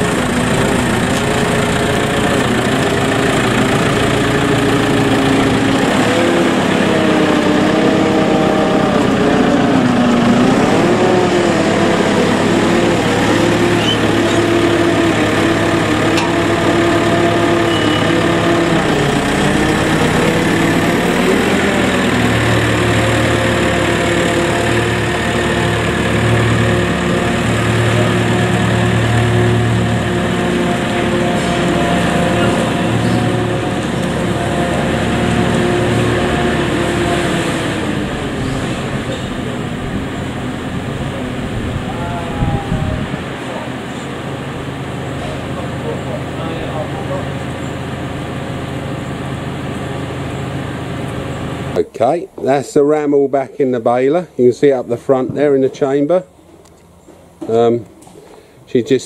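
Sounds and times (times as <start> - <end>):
diesel engine revving: 0.0 - 59.0.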